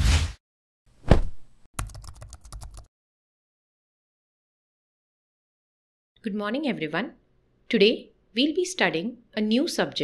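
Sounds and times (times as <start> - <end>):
keyboard typing clicks: 1.8 - 2.9.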